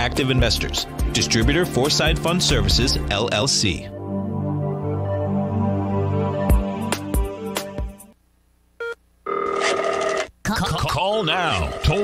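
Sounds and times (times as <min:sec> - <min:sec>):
telephone ringing: 0:08.8 - 0:10.3, 0:11.1 - 0:12.0.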